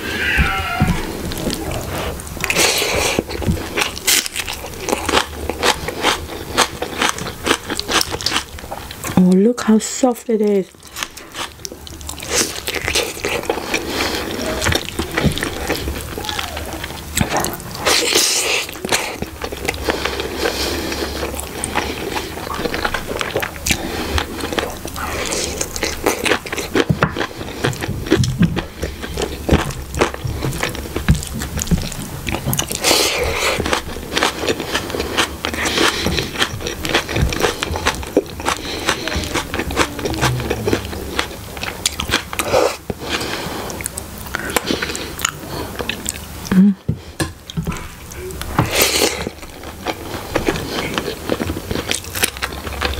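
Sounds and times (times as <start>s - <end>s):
chewing and wet mouth sounds: 1.1s - 9.8s, 10.4s - 52.9s.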